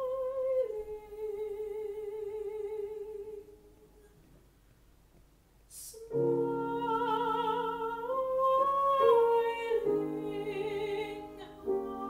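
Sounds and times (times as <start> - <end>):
soprano singing with vibrato: 0.0 - 4.0, 5.7 - 12.0.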